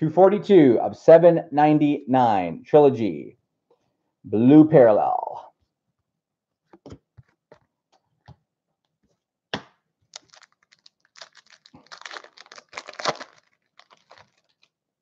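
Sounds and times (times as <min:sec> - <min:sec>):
foil pack tearing and crinkling: 0:10.1 - 0:14.8.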